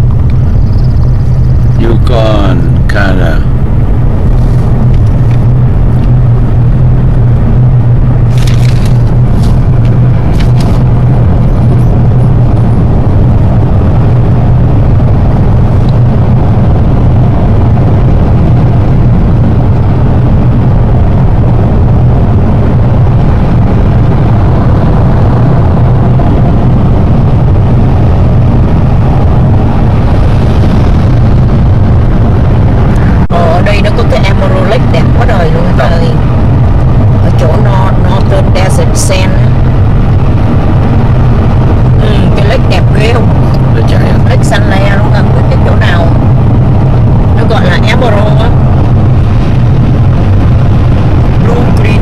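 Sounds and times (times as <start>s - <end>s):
car engine and tyres drone: 0.0s - 52.0s
voices talking: 1.7s - 3.5s, 33.2s - 36.2s, 37.2s - 39.5s, 42.0s - 46.2s, 47.4s - 48.6s, 51.4s - 52.0s.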